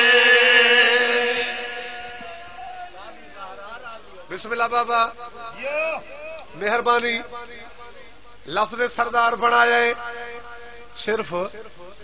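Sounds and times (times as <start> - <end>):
man chanting into a microphone: 0.0 - 3.2.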